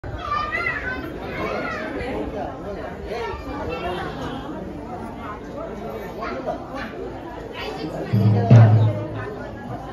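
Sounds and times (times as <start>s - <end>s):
people chattering: 0.0s - 9.9s.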